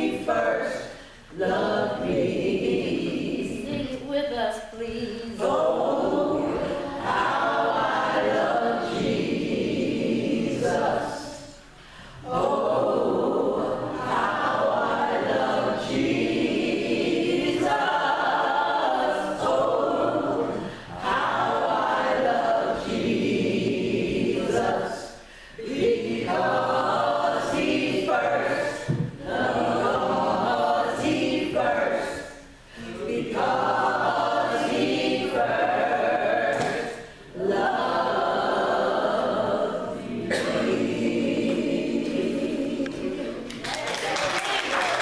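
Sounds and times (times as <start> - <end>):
women singing a capella: 0.0 - 43.6.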